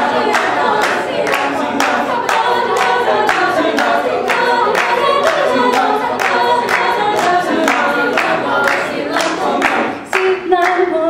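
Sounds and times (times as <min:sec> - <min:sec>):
a cappella group singing: 0:00.0 - 0:11.0
sharp handclaps: 0:00.2 - 0:10.9.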